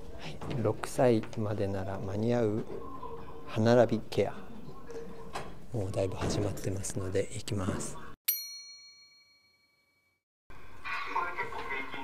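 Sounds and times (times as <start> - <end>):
bright bell-like ding: 8.3 - 10.0.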